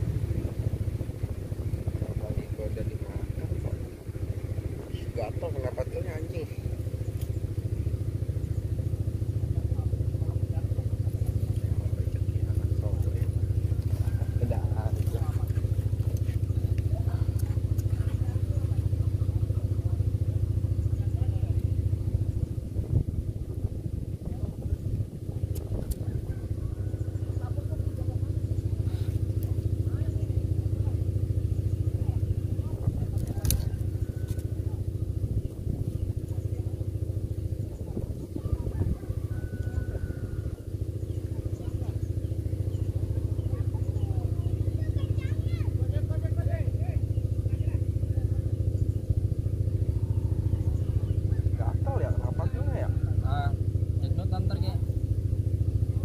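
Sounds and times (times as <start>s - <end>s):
motor humming steadily: 0.0s - 56.0s.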